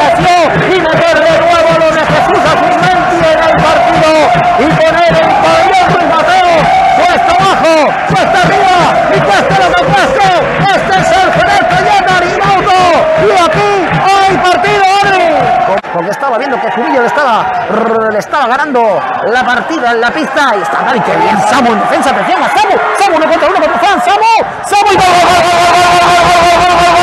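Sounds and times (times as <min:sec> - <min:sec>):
crowd noise: 0:00.0 - 0:27.0
man shouting excitedly: 0:00.0 - 0:27.0.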